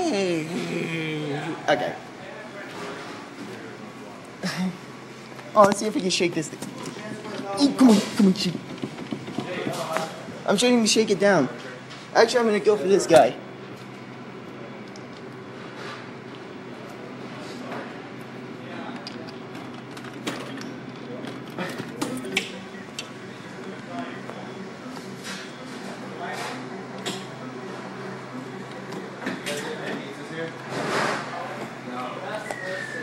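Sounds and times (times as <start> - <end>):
claw machine humming: 18.0 - 33.0.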